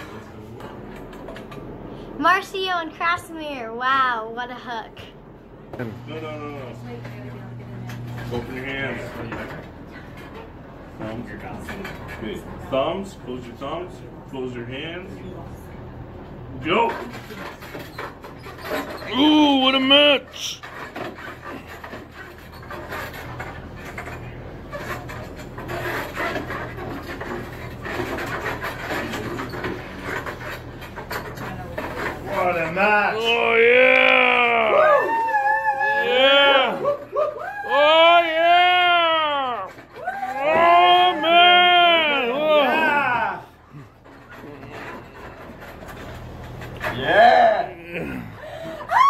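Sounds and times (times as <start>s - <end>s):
table rubbing and creaking: 5.8s - 13.0s, 16.5s - 34.8s, 37.7s - 48.4s
people shouting: 33.2s - 43.6s
breathing and straining: 47.2s - 49.0s.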